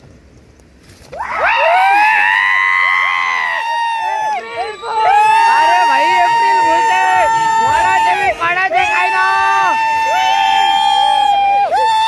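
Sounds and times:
people yelling in a long shout: 1.2s - 12.0s.

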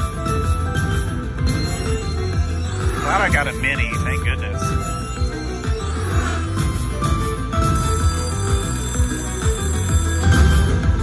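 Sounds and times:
slot machine bonus music: 0.0s - 11.0s
bell-like ringing tones: 7.6s - 11.0s.

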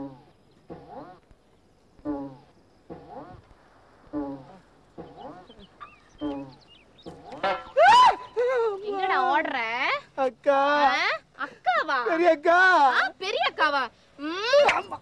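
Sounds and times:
loud high rising cry: 7.7s - 8.4s.

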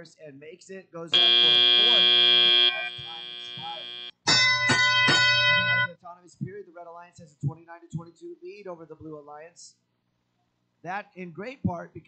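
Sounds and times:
buzzer: 1.2s - 5.9s
ringing chime tones: 2.6s - 5.9s.

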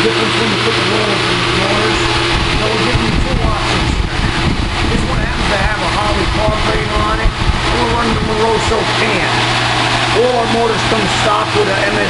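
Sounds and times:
engine droning: 0.0s - 12.0s
indistinct talking: 0.0s - 12.0s.

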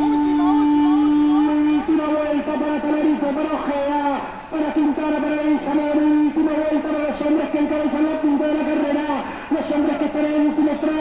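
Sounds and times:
man calling out: 0.1s - 11.0s.

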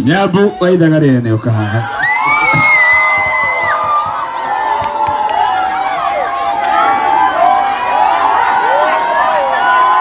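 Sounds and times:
concert crowd cheering: 1.4s - 10.0s
people shouting: 1.8s - 10.0s.

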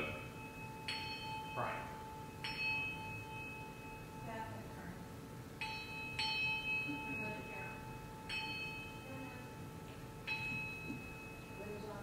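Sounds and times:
brass hand bell ringing: 0.0s - 4.4s, 5.6s - 12.0s.

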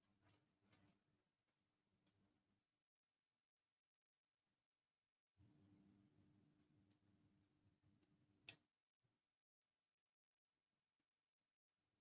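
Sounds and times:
faint steady hum: 5.4s - 8.8s.

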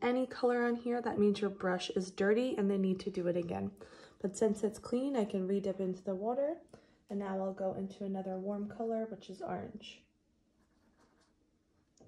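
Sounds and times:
paintbrush scratching: 10.6s - 11.5s.

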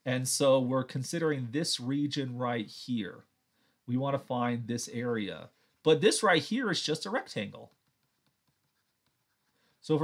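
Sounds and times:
man talking: 0.0s - 3.3s, 3.9s - 7.7s
stylus tapping on tablet screen: 7.6s - 9.4s.

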